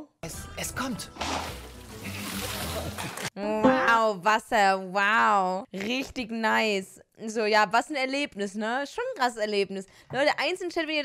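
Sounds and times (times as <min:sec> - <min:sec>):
low background music: 0:00.2 - 0:04.0.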